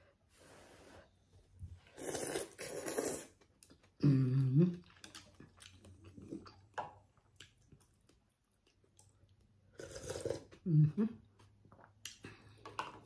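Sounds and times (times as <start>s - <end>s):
noodles slurped: 1.9s - 3.6s, 8.9s - 10.6s
person humming mm: 4.0s - 4.8s, 10.6s - 11.2s
soft chewing: 4.7s - 10.6s.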